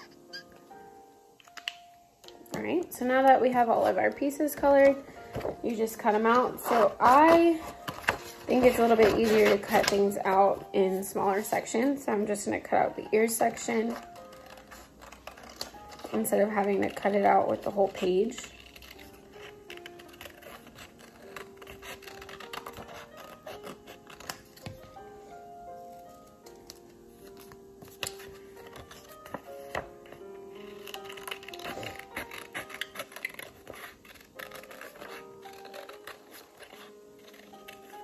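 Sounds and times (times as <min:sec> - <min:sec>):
soft background music: 0:00.0 - 0:38.0
scissors snipping paper: 0:06.2 - 0:10.6, 0:13.5 - 0:24.8, 0:27.4 - 0:38.0.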